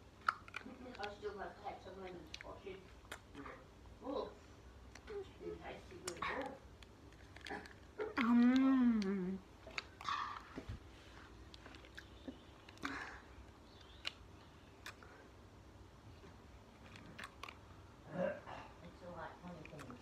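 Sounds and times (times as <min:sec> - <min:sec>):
wet mouth clicks and smacks: 0:00.2 - 0:01.2, 0:02.0 - 0:03.4, 0:13.7 - 0:15.1.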